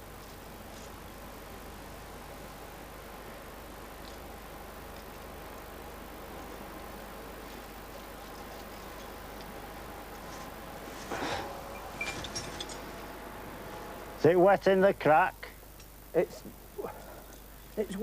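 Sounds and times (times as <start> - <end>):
steady low hiss: 0.0 - 18.0
faint sustained tones: 6.4 - 14.4
climbing gear clinking: 11.7 - 12.9.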